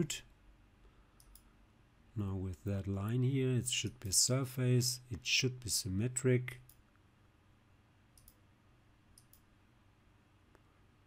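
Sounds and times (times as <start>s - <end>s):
computer mouse clicks: 1.2s - 1.5s, 8.2s - 8.4s, 9.1s - 9.5s.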